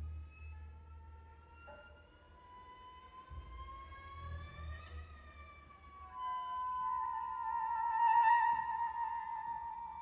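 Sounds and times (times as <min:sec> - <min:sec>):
quiet chamber music: 0:00.0 - 0:10.0.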